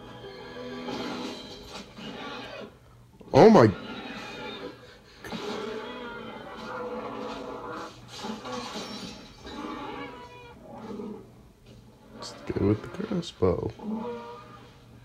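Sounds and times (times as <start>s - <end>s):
dinosaur growls on tv soundtrack: 0.0s - 14.9s.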